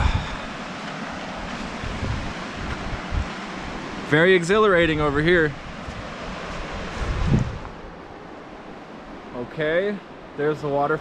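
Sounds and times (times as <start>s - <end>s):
wind buffeting microphone: 0.0s - 4.0s, 4.7s - 9.3s
small waterfall rushing: 0.0s - 11.0s.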